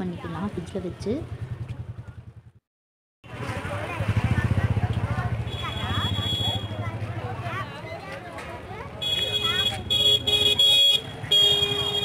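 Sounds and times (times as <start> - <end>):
motorbike engine running: 0.4 - 2.6, 3.3 - 7.5.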